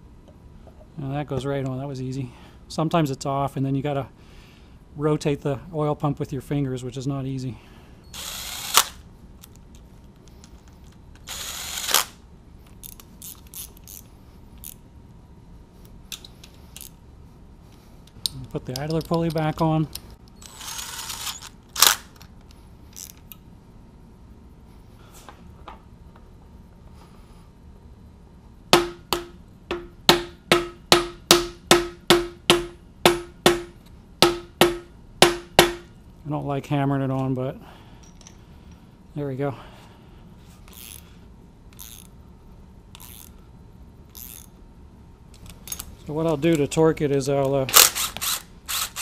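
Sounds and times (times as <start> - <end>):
cordless drill driving a bolt: 8.1 - 9.0, 11.2 - 12.2, 20.4 - 22.0, 47.7 - 49.0
metallic clicks of hand tools: 18.0 - 20.6.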